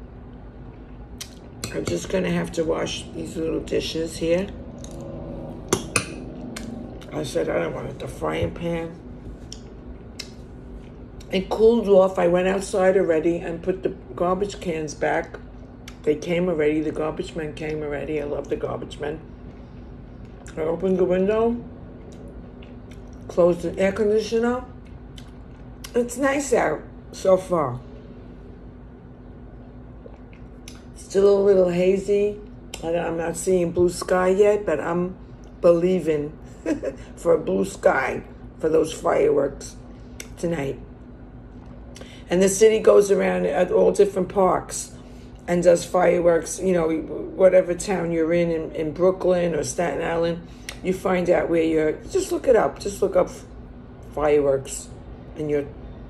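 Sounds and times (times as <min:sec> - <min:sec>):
steady low hum: 0:00.0 - 0:56.0.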